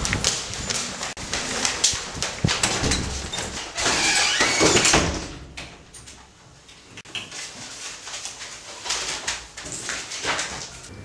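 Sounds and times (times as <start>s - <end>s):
paper bag rustling: 0.0s - 3.9s, 7.2s - 10.9s.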